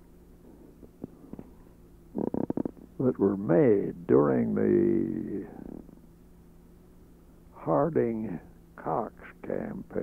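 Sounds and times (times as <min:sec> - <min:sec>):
tape recording hum: 0:00.0 - 0:10.0
man's rough throat rasp: 0:02.1 - 0:02.9
man speaking: 0:03.0 - 0:05.8, 0:07.6 - 0:10.0.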